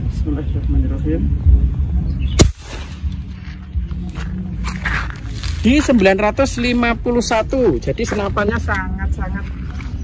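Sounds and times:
air rifle shot: 0:02.4 - 0:03.2.

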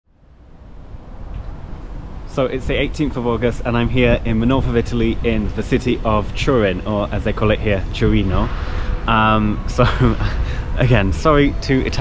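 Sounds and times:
street traffic: 0:00.0 - 0:12.0
wind on microphone: 0:01.0 - 0:12.0.

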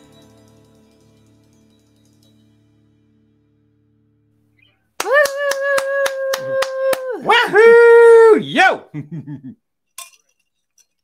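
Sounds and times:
hands clapping: 0:05.0 - 0:07.7
person whooping: 0:05.0 - 0:09.6.

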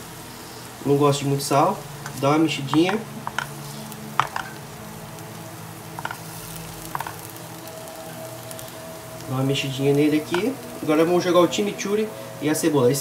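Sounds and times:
food sizzling in a pan: 0:00.0 - 0:13.0.

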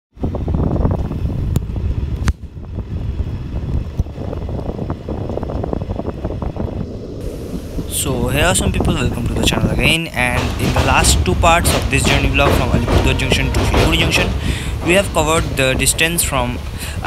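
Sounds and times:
wind buffeting microphone: 0:00.1 - 0:17.0
train rumbling in motion: 0:00.2 - 0:17.0.

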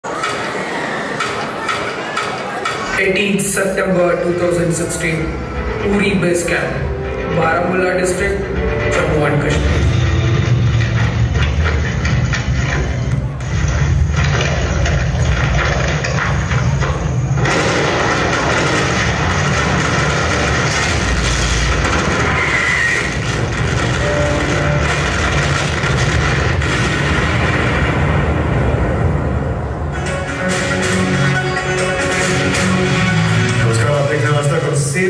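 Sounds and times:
film score and battle effects: 0:03.0 - 0:35.0.

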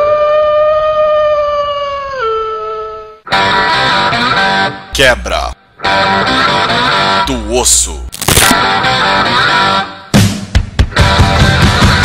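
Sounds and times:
wolf howling: 0:00.0 - 0:03.2.

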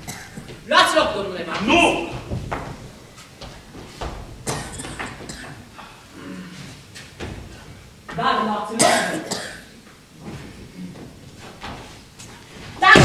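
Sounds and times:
footsteps on wooden stage: 0:00.0 - 0:05.7, 0:06.8 - 0:08.2, 0:09.8 - 0:13.0.

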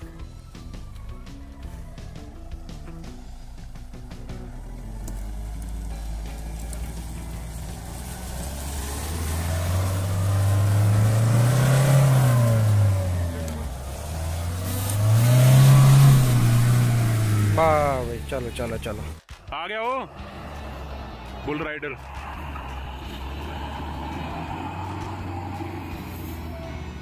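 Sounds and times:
engine revving under load: 0:01.7 - 0:19.2, 0:20.0 - 0:27.0
wheels spinning in sand: 0:04.3 - 0:17.6.

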